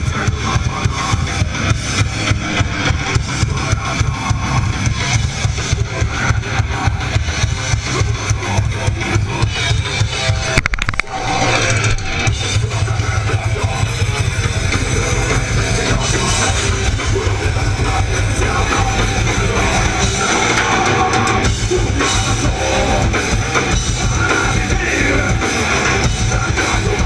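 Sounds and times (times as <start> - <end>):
electric guitars: 0.0 - 27.0
live rock band playing: 0.0 - 27.0
rapid drum-kit hits: 0.0 - 27.0.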